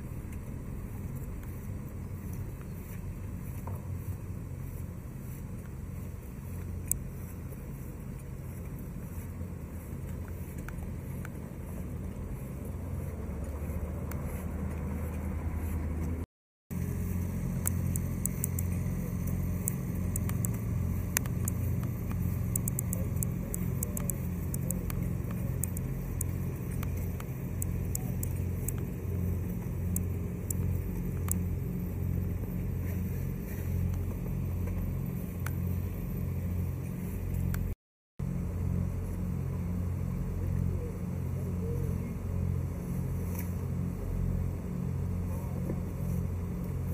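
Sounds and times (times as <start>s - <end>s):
engine pulsing hum: 0.0s - 46.9s
faint ticks: 6.6s - 7.1s, 13.4s - 15.2s, 17.5s - 28.9s.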